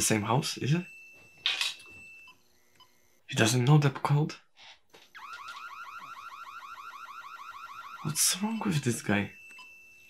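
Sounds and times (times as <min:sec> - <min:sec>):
burglar alarm siren chirping: 0:00.0 - 0:03.2, 0:04.9 - 0:10.0.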